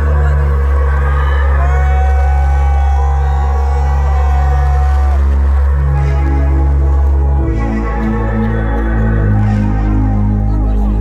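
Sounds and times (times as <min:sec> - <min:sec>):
electronic music through loudspeakers: 0:00.0 - 0:11.0.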